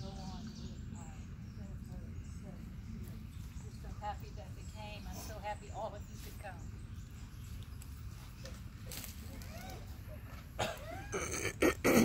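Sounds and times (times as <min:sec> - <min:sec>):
steady low rumble: 0:00.0 - 0:09.2
low murmuring voices: 0:00.0 - 0:12.0.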